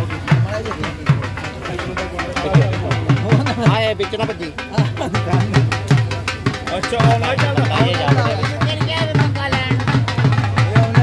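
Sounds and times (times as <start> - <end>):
dhol drumming: 0.0 - 11.0.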